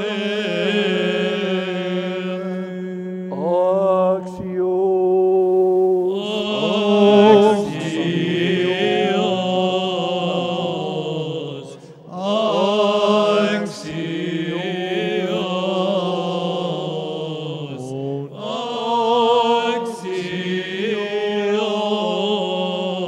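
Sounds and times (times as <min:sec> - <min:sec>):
voices chanting a melody: 0:00.0 - 0:04.6, 0:06.0 - 0:23.0.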